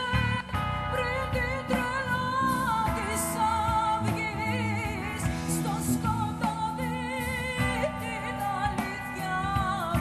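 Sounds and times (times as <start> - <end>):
electric guitar: 0.0 - 10.0
woman singing: 0.0 - 10.0.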